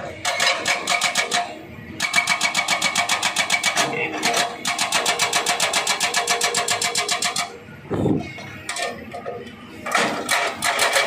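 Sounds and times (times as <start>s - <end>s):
hydraulic breaker hammering rock: 0.2s - 7.5s, 9.9s - 11.0s.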